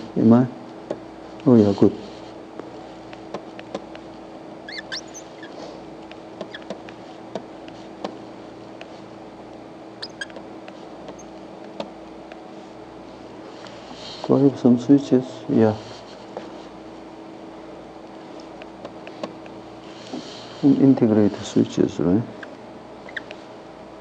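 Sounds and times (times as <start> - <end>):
steady electrical hum: 0.0 - 24.0
high squeaks: 4.6 - 5.6, 6.4 - 6.7, 10.0 - 10.4, 22.4 - 23.4.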